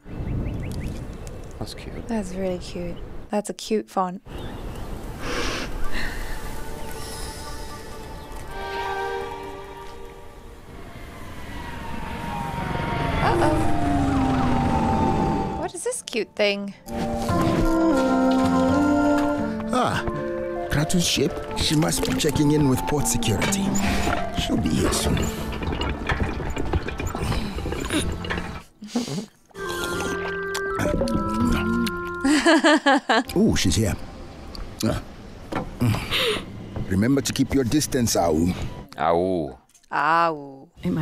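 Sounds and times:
quiet music: 0:06.4 - 0:10.7, 0:12.4 - 0:26.8, 0:29.6 - 0:35.9, 0:36.6 - 0:41.0
spaceship engine whining: 0:10.4 - 0:15.8
soft held music: 0:15.6 - 0:26.8, 0:29.6 - 0:32.6
clattering mechanical sound effects: 0:23.3 - 0:28.7.

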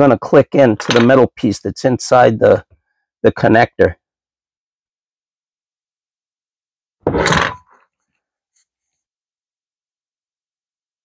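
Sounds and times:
tool scraping on wooden bench: 0:07.1 - 0:07.8.

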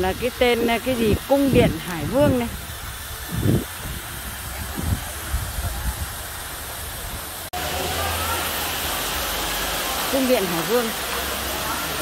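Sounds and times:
fountain water splashing on rocks: 0:00.0 - 0:12.0.

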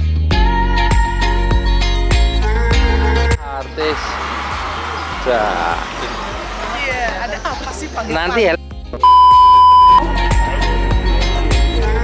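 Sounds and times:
crowd murmur: 0:03.8 - 0:08.4.

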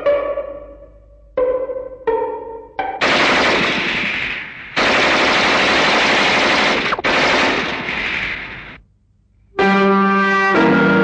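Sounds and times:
machine-gun fire: 0:03.0 - 0:08.8.

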